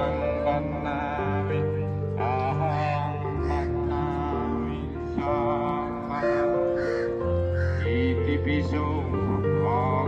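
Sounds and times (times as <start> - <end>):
background music with held notes: 0.0 - 10.0
crow cawing: 3.4 - 3.8, 6.2 - 8.0.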